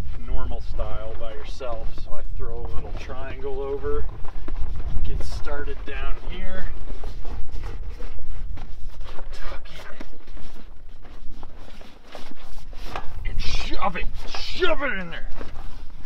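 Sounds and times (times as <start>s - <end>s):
steady low rumble: 0.0s - 12.0s
tent canvas rustling: 0.0s - 16.0s.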